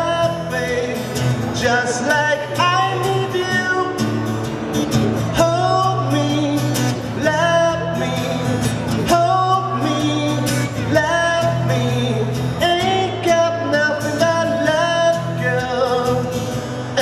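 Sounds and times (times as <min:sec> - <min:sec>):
man singing: 0:00.0 - 0:04.4, 0:05.2 - 0:17.0
acoustic guitar strumming: 0:00.0 - 0:17.0.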